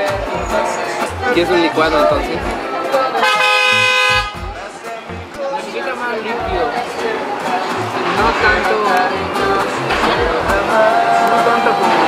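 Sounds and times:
people talking: 0.0 - 12.0
horn toot: 3.1 - 4.6.

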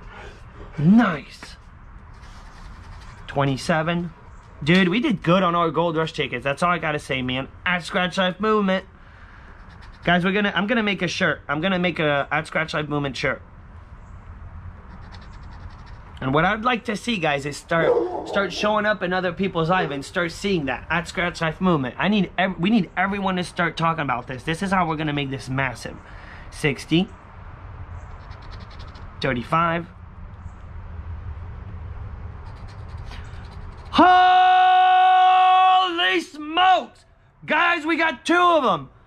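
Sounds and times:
coin scratching lottery ticket: 2.1 - 3.4, 9.5 - 10.2, 14.9 - 16.0, 28.2 - 29.0, 32.4 - 34.0.

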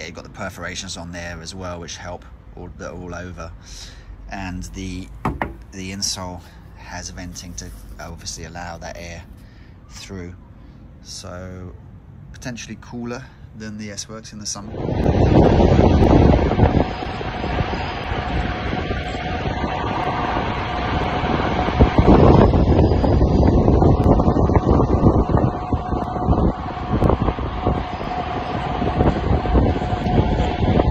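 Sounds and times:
wind buffeting microphone: 14.6 - 30.9.

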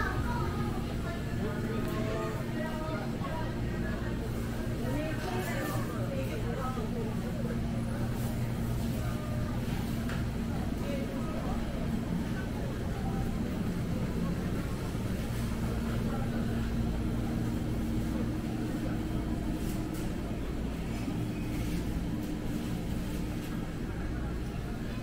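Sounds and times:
faint voices of shoppers: 0.0 - 25.0
refrigerated cases humming: 0.0 - 25.0.

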